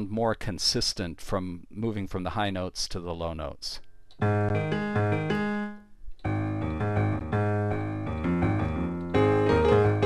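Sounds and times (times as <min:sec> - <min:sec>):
piano chords: 0:04.2 - 0:10.0.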